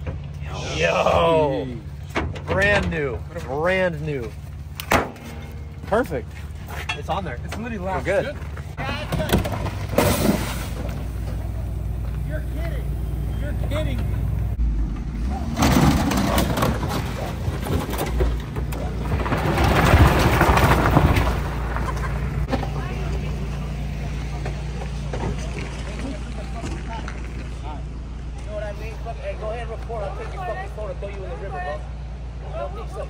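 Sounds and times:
vehicle engine idling: 0.0s - 19.5s, 20.7s - 33.0s.

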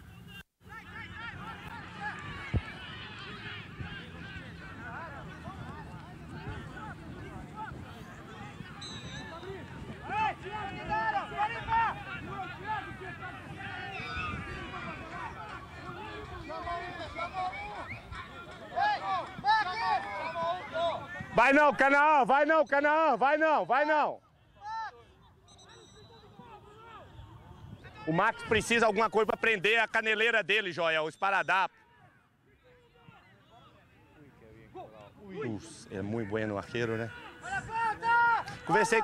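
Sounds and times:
overlapping voices calling out: 0.2s - 25.4s
people shouting: 0.7s - 8.5s, 9.4s - 22.0s, 37.0s - 39.0s
distant people talking: 0.7s - 21.3s.

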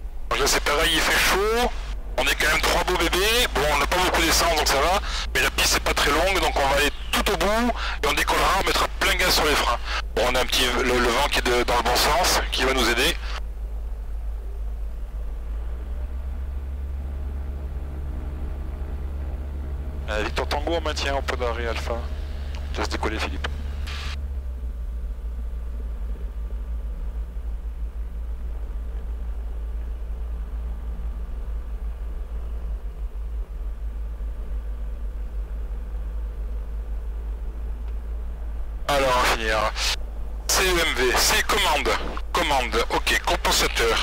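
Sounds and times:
aircraft piston engine idling: 0.0s - 15.6s, 17.5s - 44.0s
person talking over intercom: 0.3s - 13.4s, 38.9s - 44.0s.

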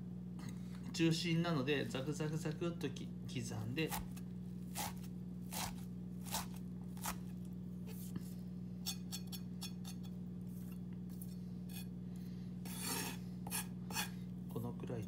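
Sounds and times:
knife chopping on wooden board: 3.8s - 7.3s
blade scraping across board: 12.6s - 14.2s.

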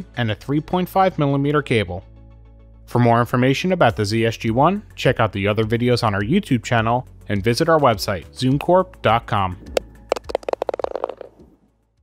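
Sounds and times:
golf ball rattling in cup: 9.6s - 11.6s.

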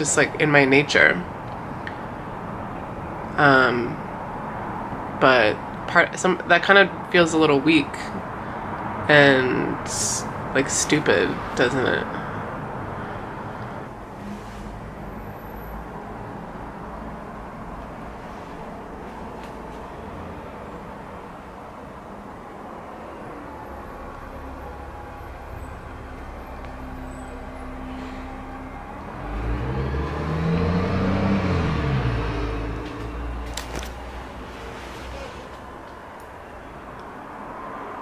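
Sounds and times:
low traffic rumble: 0.0s - 38.0s
vehicle driving past: 10.3s - 38.0s.

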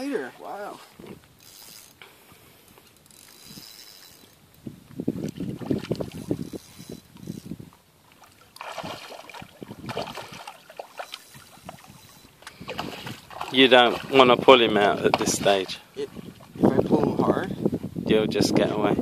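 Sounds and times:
fish splashing at water surface: 8.1s - 15.7s.

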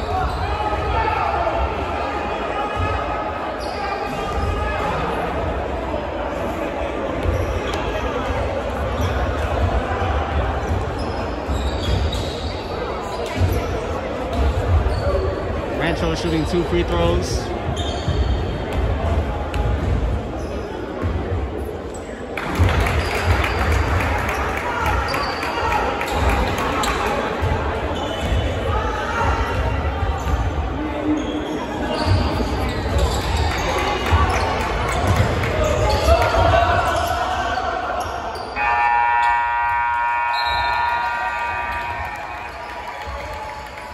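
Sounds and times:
crowd voices and shouts: 0.0s - 43.9s.

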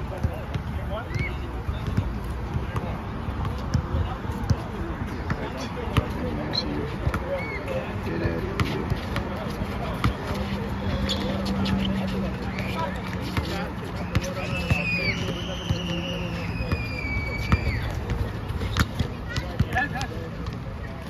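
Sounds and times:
basketball dribbling on asphalt: 0.1s - 6.2s, 17.4s - 20.7s.

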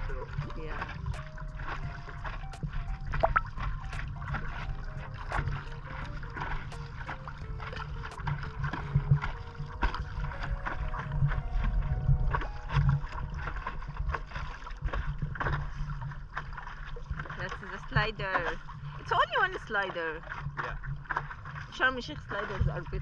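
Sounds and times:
steady low rumble: 0.0s - 19.6s
water splashing around paddleboard: 0.0s - 23.0s.

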